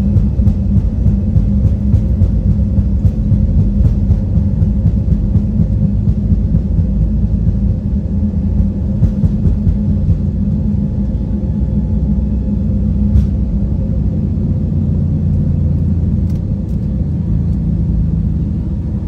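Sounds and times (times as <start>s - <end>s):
jet engines idling: 0.0s - 19.0s.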